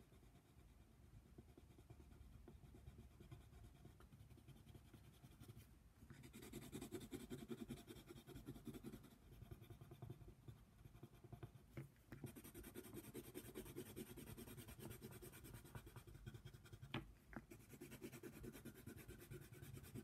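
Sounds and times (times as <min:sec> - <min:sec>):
pencil scratching on paper: 0:00.0 - 0:20.0.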